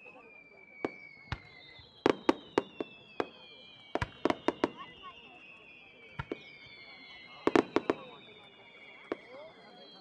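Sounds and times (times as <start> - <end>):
fireworks whistles falling in pitch: 0.0 - 10.0
fireworks sharp bangs: 0.8 - 5.4, 6.0 - 8.3.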